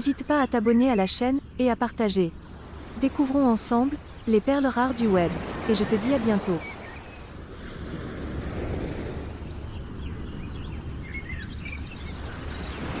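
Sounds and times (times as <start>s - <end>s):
small birds chirping: 0.0s - 7.4s, 9.3s - 13.0s
road traffic rumble: 0.0s - 13.0s.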